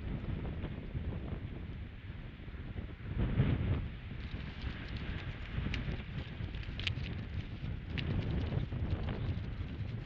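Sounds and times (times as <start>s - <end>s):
wind buffeting microphone: 0.0s - 10.0s
faint clicks and crackles: 4.1s - 10.0s.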